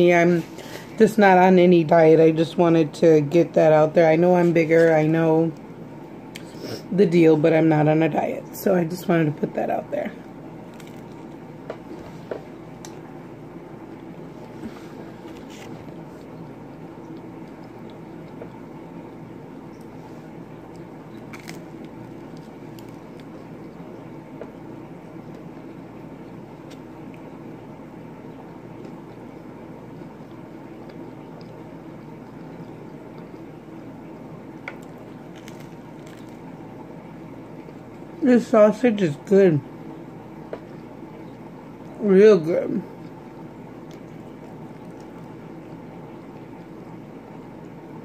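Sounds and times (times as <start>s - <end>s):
steady background hum: 0.0s - 48.0s
person chewing pizza: 5.6s - 6.9s, 10.2s - 13.0s, 13.8s - 27.6s, 28.6s - 38.2s, 40.4s - 42.0s, 42.9s - 47.0s
faint crunches and mouth clicks: 10.7s - 13.0s, 14.4s - 18.6s, 20.6s - 23.8s, 26.2s - 27.3s, 34.6s - 36.6s, 43.8s - 45.4s.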